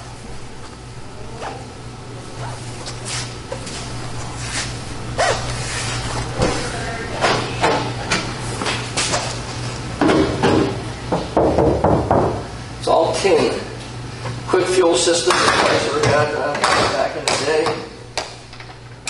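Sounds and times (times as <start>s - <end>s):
room tone hum: 0.0s - 19.0s.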